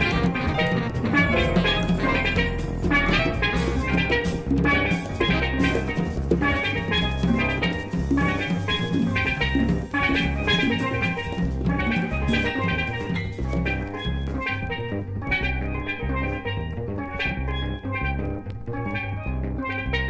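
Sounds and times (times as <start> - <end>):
drum kit: 0.0 - 19.2
bass: 0.0 - 20.0
steel drum notes: 0.0 - 20.0.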